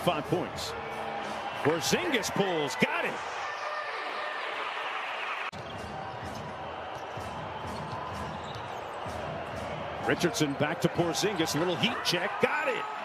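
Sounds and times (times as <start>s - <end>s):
crowd cheering: 0.0s - 13.0s.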